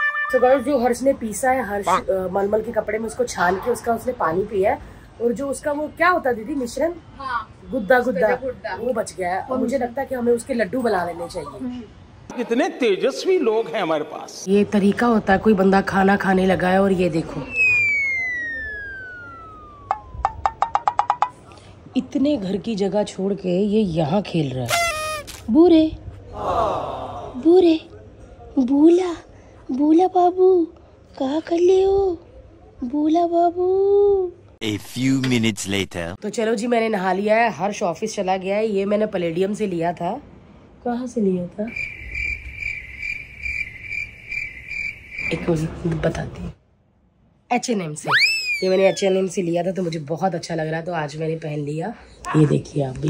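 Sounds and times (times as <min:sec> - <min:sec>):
high pulsing chirping tone: 0:17.4 - 0:20.6, 0:41.7 - 0:45.4
whistle falling in pitch: 0:17.4 - 0:20.6, 0:48.1 - 0:49.0.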